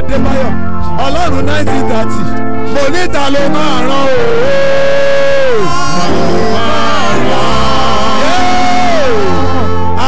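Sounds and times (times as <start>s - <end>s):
instrumental backing: 0.0s - 10.0s
man singing through microphone: 2.8s - 10.0s.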